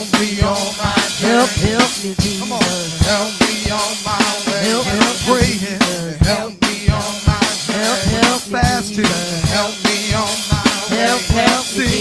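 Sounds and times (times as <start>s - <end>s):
drum kit beat: 0.0s - 12.0s
group singing gospel: 0.0s - 12.0s.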